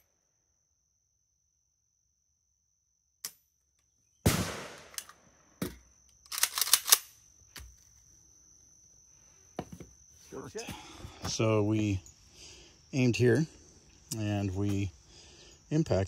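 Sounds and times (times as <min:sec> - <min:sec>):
rifle shot with echo: 0:04.2 - 0:05.0
rifle action metallic clacks: 0:06.2 - 0:07.1.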